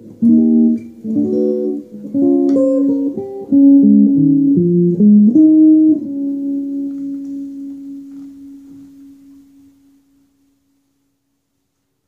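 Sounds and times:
electric guitar note ringing: 0.0s - 10.6s.

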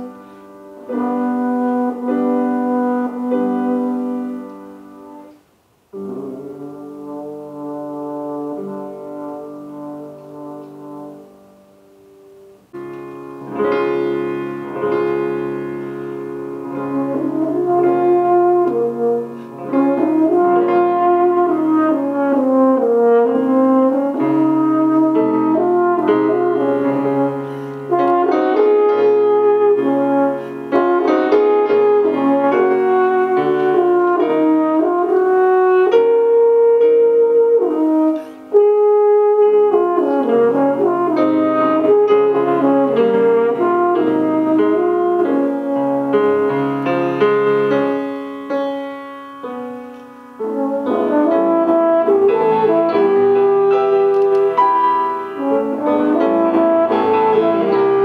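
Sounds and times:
french horn melody: 0.0s - 58.0s
piano accompaniment: 0.0s - 58.0s.

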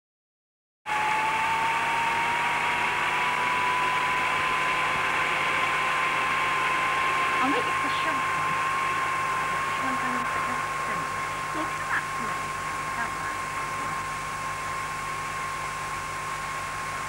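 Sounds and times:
hood hair dryer whirring: 0.9s - 17.0s
thin motor whine: 0.9s - 17.0s.

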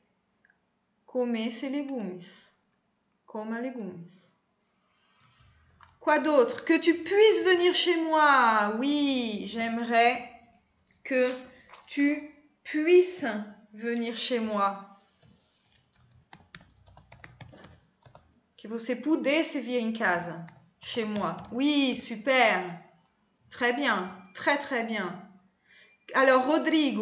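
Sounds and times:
computer keyboard typing: 5.2s - 6.1s, 15.2s - 18.3s, 20.2s - 22.1s, 22.7s - 24.4s
person speaking: 5.8s - 10.2s, 11.1s - 12.2s, 13.8s - 14.6s, 18.7s - 22.8s, 23.5s - 25.0s.

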